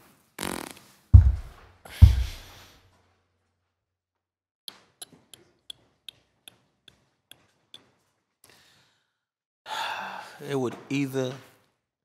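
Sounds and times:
man sighing heavily: 9.7s - 10.4s.

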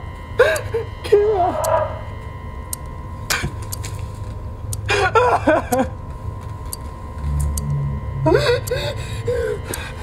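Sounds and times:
low rumble: 7.0s - 10.0s.

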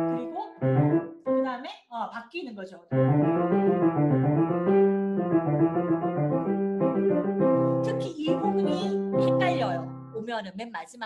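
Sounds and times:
piano played briskly: 0.0s - 1.6s, 2.9s - 10.2s.

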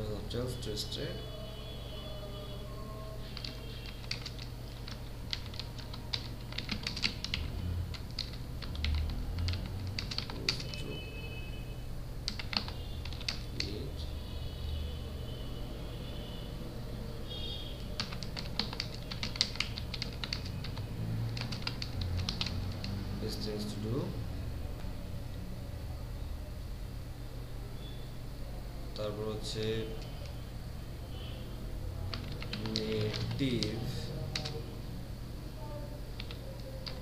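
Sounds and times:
steady low hum: 0.0s - 37.0s
computer keyboard typing: 3.2s - 10.9s, 12.2s - 13.8s, 17.8s - 23.0s, 32.1s - 34.6s, 36.2s - 37.0s.

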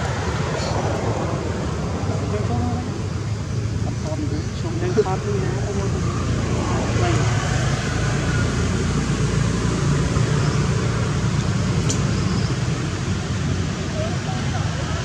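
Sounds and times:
low outdoor rumble: 0.0s - 15.0s.

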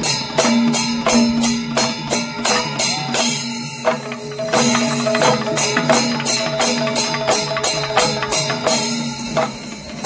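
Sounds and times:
hand cymbals ringing: 0.0s - 10.0s
hand-struck barrel drums: 0.0s - 10.0s.

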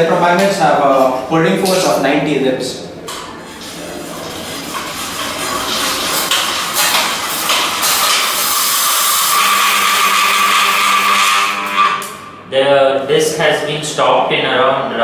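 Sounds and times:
bicycle wheel whirring: 3.5s - 12.4s.

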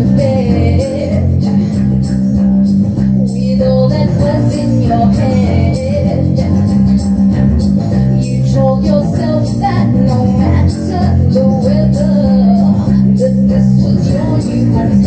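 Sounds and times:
woman singing into microphone: 0.0s - 2.6s, 3.2s - 15.0s
guitar: 0.0s - 15.0s
steady low bass: 0.0s - 15.0s.

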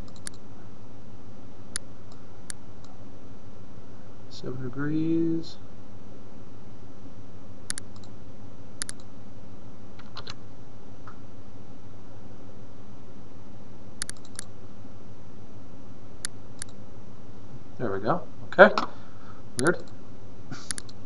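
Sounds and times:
computer mouse clicking: 0.0s - 0.4s, 7.7s - 8.1s, 8.8s - 9.1s, 14.0s - 14.5s, 16.2s - 16.8s, 20.6s - 21.0s
steady low hum: 0.0s - 21.0s.

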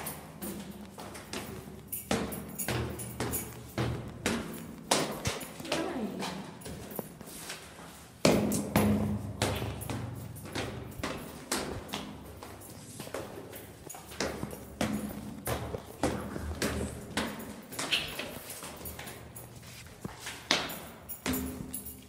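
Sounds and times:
footsteps going down stairs: 0.0s - 22.0s.

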